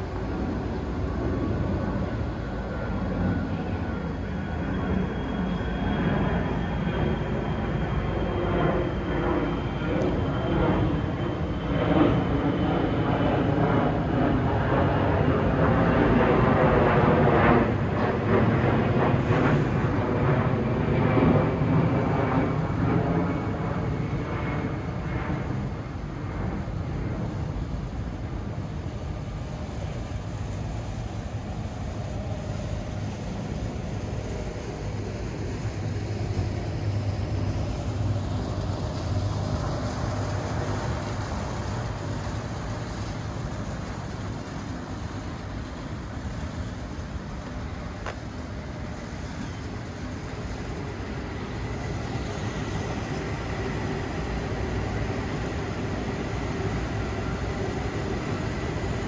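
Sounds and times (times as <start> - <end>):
high whine falling in pitch: 0.0 - 59.0.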